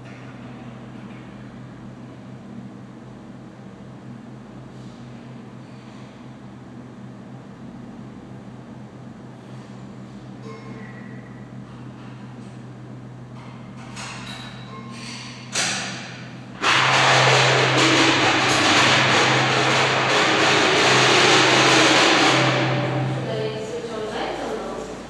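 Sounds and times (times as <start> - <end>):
low hum: 16.2 - 25.0.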